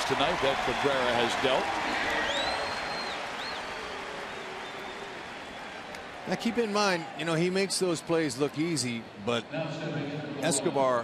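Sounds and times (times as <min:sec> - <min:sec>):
crowd applauding: 0:00.0 - 0:07.7.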